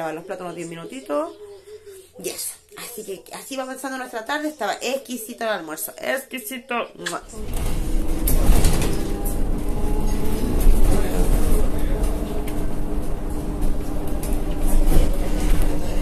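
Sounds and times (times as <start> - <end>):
bus drivetrain drone: 7.3 - 16.0
deep road rumble: 7.3 - 16.0.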